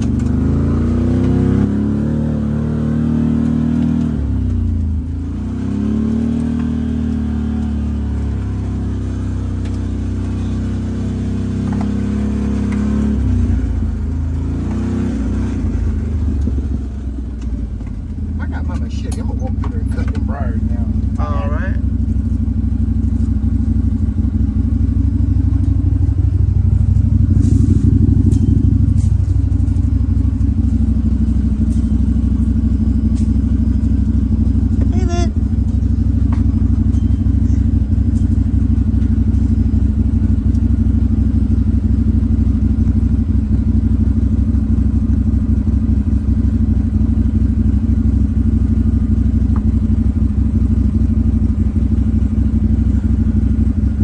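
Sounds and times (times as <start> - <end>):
utility vehicle engine running: 0.0 - 54.0.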